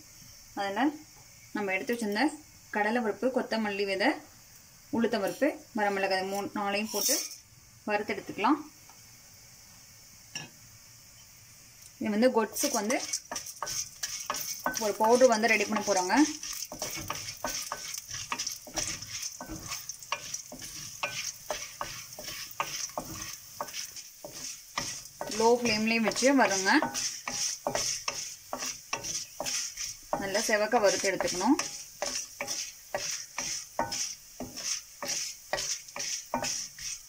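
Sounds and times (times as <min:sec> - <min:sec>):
lentils frying in oil: 0:00.0 - 0:37.0
spoon scraping steel pan: 0:05.9 - 0:07.4, 0:12.5 - 0:37.0.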